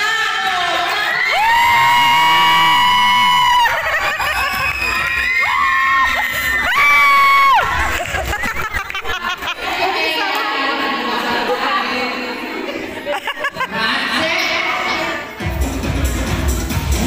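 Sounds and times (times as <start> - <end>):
crowd cheering: 0.0 - 11.5
children shrieking: 0.9 - 8.5.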